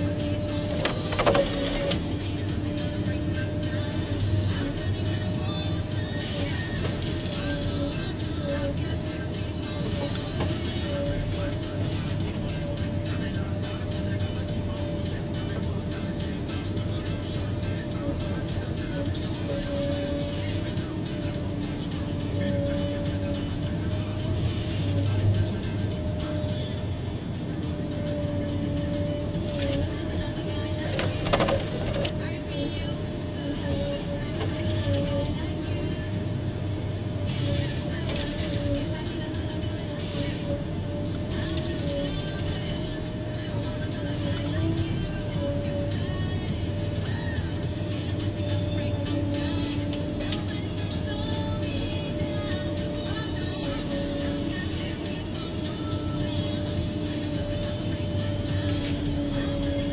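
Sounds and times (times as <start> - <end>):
forest harvester engine droning: 0.0 - 59.9.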